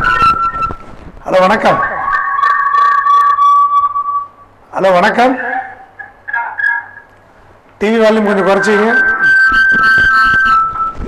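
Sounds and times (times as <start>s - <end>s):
audio feedback whistling: 0.0s - 1.0s, 1.6s - 4.6s, 8.3s - 11.0s.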